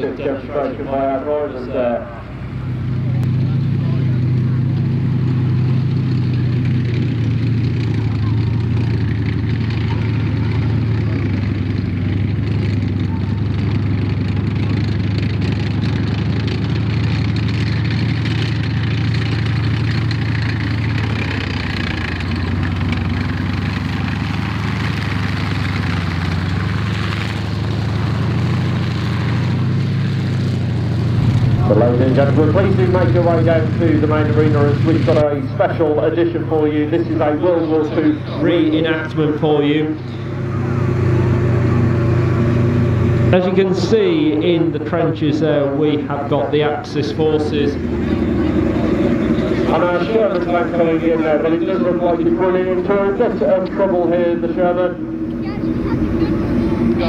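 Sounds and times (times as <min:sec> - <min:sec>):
tank engine droning: 0:00.0 - 0:57.0.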